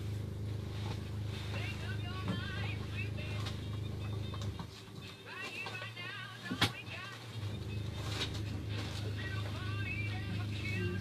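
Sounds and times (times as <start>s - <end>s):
low engine-like hum: 0.0s - 11.0s
indistinct voices: 9.0s - 11.0s.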